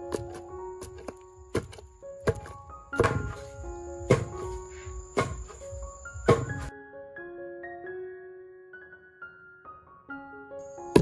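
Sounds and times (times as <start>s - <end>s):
pestle thudding in stone mortar: 0.0s - 4.5s, 5.1s - 5.6s, 6.2s - 6.7s
piano music: 0.0s - 11.0s.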